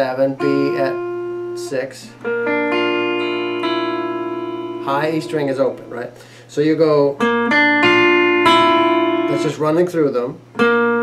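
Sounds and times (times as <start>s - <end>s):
clean electric guitar picking: 0.0s - 11.0s.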